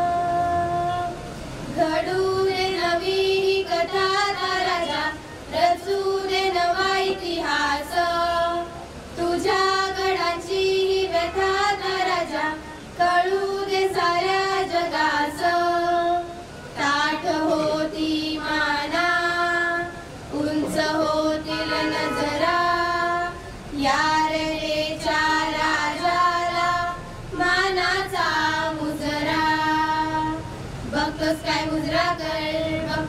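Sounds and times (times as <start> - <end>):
girls singing into microphones: 0.0 - 33.0.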